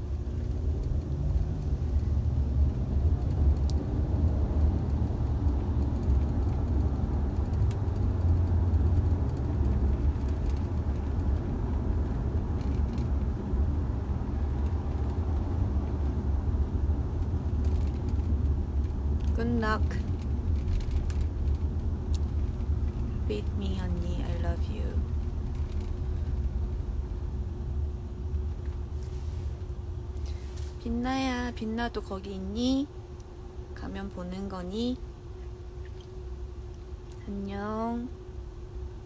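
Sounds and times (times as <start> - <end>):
car road rumble inside cabin: 0.0 - 39.0.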